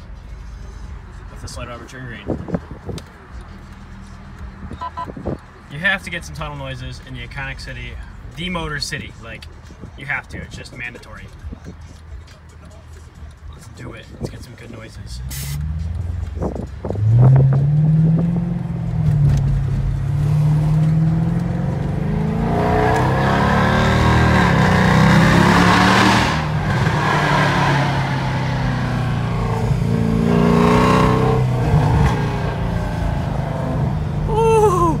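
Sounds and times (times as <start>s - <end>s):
car engine revving: 15.2s - 34.4s.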